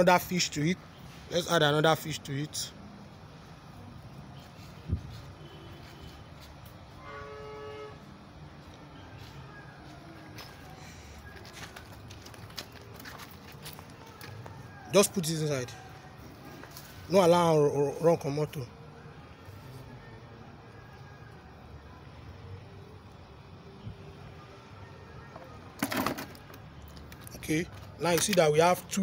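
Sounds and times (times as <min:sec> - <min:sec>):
faint steady background sound: 0:00.0 - 0:29.0.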